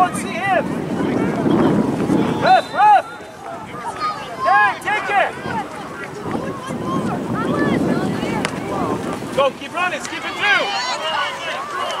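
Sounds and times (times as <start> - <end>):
players and spectators shouting: 0.0 - 12.0
wind rumbling on microphone: 0.0 - 12.0.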